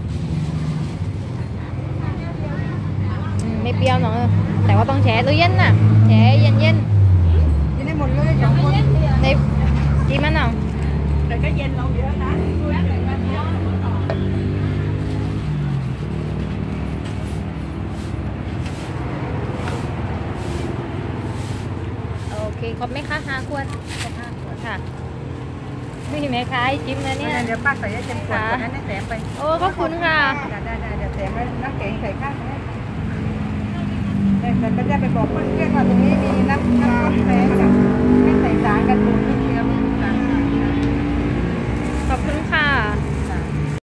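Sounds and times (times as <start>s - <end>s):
street noise: 0.0s - 43.8s
people talking: 1.2s - 10.6s, 11.3s - 14.4s, 22.2s - 24.9s, 26.0s - 32.6s, 33.6s - 40.9s, 42.0s - 43.8s
vehicle engine running: 8.2s - 43.8s.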